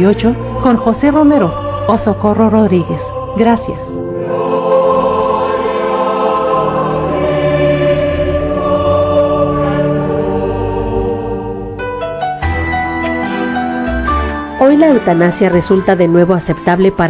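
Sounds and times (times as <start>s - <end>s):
choir singing sustained chords: 0.0s - 17.0s
music: 0.0s - 17.0s.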